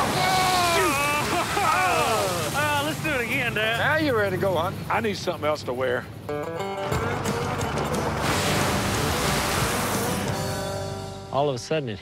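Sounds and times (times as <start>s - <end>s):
tyres splashing through mud puddle: 0.0s - 4.0s, 6.9s - 10.8s
background music: 2.7s - 12.0s.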